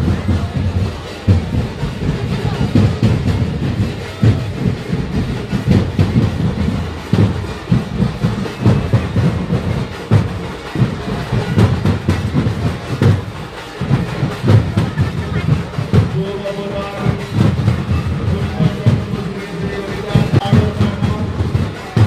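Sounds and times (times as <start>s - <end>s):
crowd din: 0.0s - 22.0s
distorted drum-heavy music: 0.0s - 22.0s.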